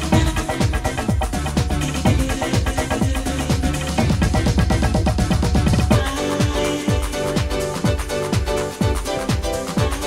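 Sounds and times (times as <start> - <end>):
house and techno dance music: 0.0 - 10.0
kick drum beat: 0.0 - 10.0.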